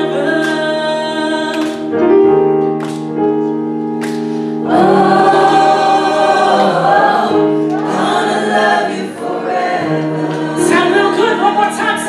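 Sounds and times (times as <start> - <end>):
gospel vocal group singing: 0.0 - 1.9, 4.4 - 12.0.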